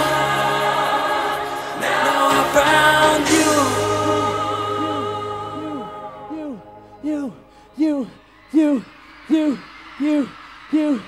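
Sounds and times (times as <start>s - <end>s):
quiet musical backing: 0.0s - 8.8s.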